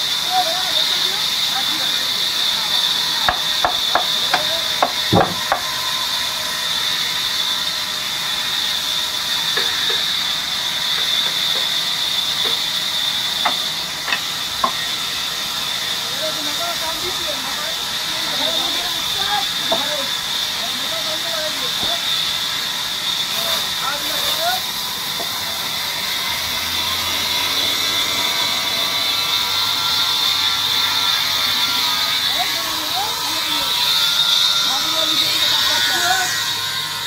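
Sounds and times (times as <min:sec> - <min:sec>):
band saw cutting wood: 0:00.0 - 0:37.0
sharp knocks: 0:03.3 - 0:05.7.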